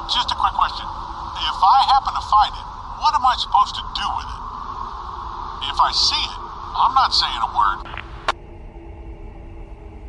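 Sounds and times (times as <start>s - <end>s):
radio hiss: 0.0s - 8.4s
low hum and rumble: 0.0s - 10.0s
sharp radio click: 7.8s - 8.4s.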